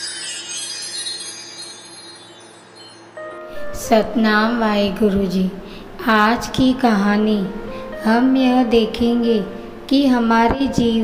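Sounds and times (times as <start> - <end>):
high ringing chime tones: 0.0 - 4.2.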